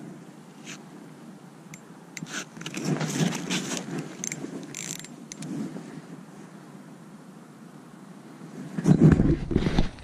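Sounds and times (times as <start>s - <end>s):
fishing reel clicking: 2.2s - 5.5s.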